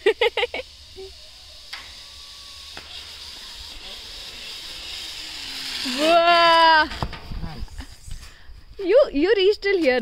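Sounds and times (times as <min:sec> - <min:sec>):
zip line trolley hissing on cable: 0:00.0 - 0:08.1.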